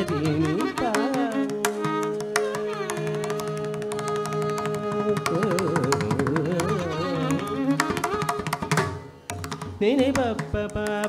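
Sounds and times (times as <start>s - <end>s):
ornamented vocal melody: 0.0s - 8.2s, 9.8s - 11.0s
mridangam drum strokes: 0.0s - 11.0s.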